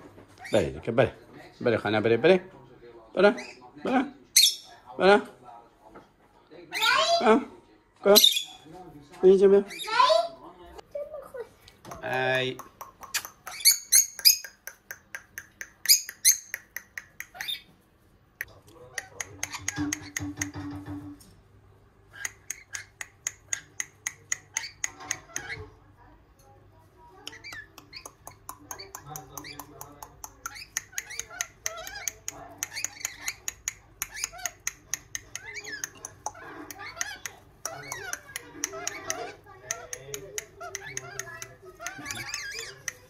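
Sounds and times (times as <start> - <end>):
lorikeets chattering: 8.1 - 8.7, 9.6 - 10.4, 13.1 - 17.7, 22.1 - 25.8, 27.3 - 43.0.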